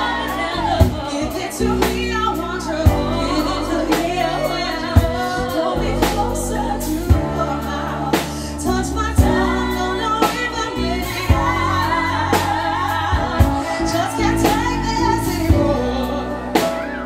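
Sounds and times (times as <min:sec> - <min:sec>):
pop-soul band playing: 0:00.0 - 0:17.0
women singing: 0:00.0 - 0:17.0.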